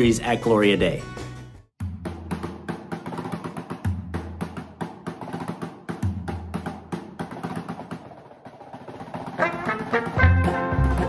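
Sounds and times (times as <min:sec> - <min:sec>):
snare drum roll with sticks: 0:02.3 - 0:10.4.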